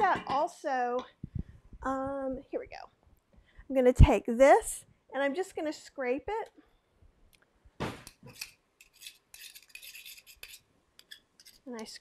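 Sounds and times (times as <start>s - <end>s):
spoon scraping metal masher: 8.3s - 12.0s.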